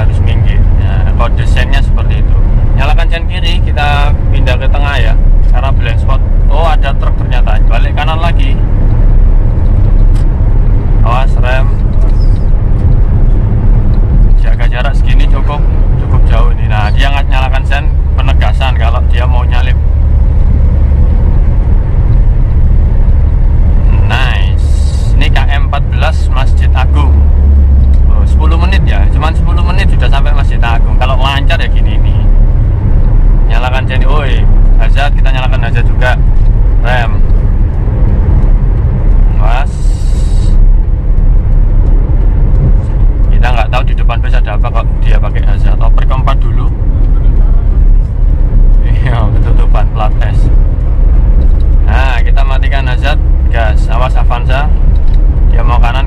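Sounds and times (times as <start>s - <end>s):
engine and road rumble in car: 0.0s - 56.0s.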